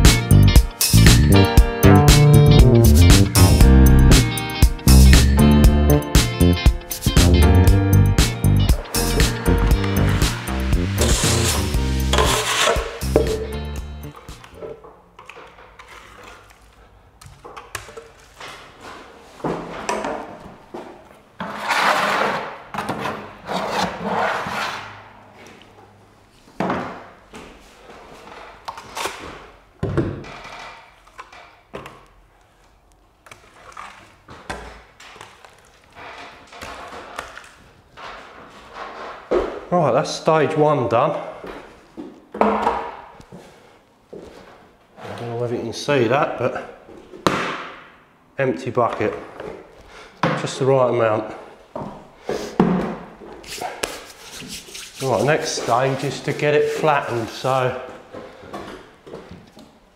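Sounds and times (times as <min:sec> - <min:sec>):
background music: 0:00.0 - 0:14.8
trowel scraping wet plaster: 0:10.3 - 0:13.0, 0:21.4 - 0:24.9, 0:53.4 - 0:56.9.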